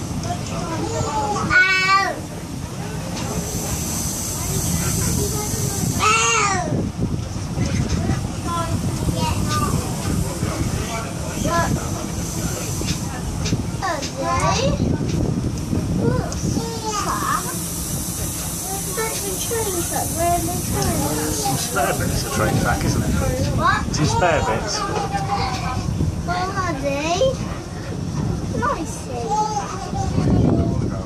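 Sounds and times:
faint voices: 0.0s - 31.0s
train wheels rumbling on rail: 0.0s - 31.0s
steady high hiss: 3.2s - 6.4s, 16.6s - 23.4s.

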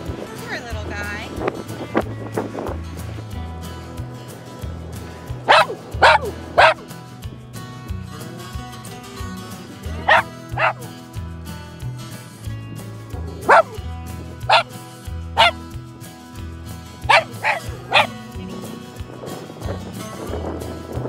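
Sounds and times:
background music: 0.0s - 21.0s
dog barking: 5.5s - 6.8s, 10.0s - 10.9s, 13.3s - 13.8s, 14.4s - 14.7s, 15.4s - 15.6s, 17.1s - 18.1s.

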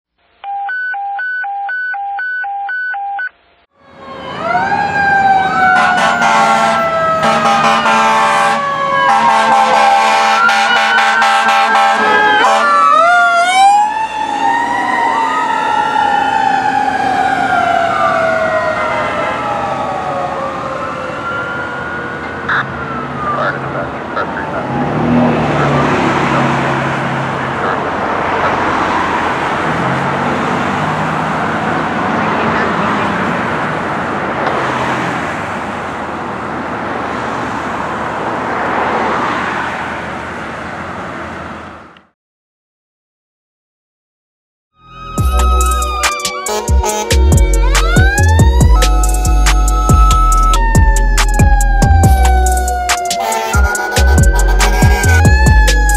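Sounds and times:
mechanical siren wailing: 0.4s - 26.6s, 44.8s - 55.9s
road traffic: 3.2s - 42.2s, 44.8s - 55.9s
air horns blasting: 5.5s - 13.0s, 45.0s - 55.9s.

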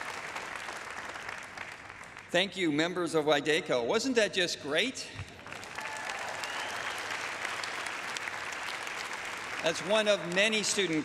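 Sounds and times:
audience applauding: 0.0s - 2.3s, 5.4s - 11.0s.

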